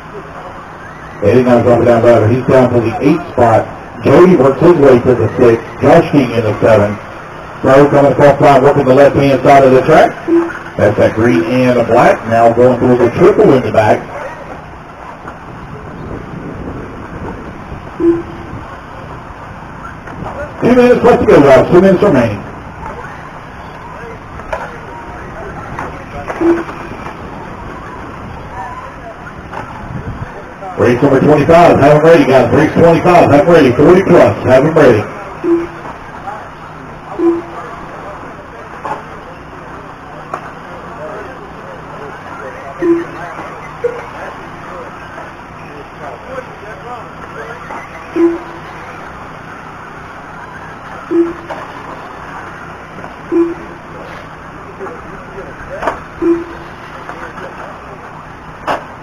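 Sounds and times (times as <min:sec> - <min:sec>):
faint voices: 0:00.0 - 0:59.0
short electronic beep: 0:10.2 - 0:10.7, 0:18.0 - 0:18.5, 0:26.3 - 0:27.1, 0:35.4 - 0:35.9, 0:37.2 - 0:37.6, 0:42.8 - 0:44.2, 0:47.6 - 0:49.0, 0:50.5 - 0:51.6, 0:53.3 - 0:53.8, 0:56.2 - 0:56.7.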